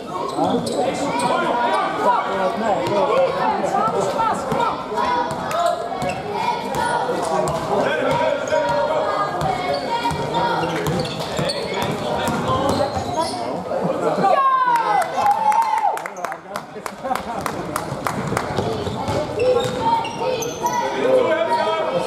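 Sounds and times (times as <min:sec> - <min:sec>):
voices in a hall: 0:00.0 - 0:22.0.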